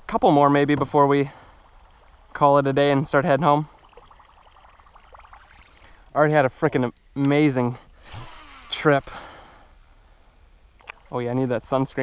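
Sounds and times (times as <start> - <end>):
soft water noise: 0.0 - 12.0
fishing reel cranking: 8.0 - 9.6.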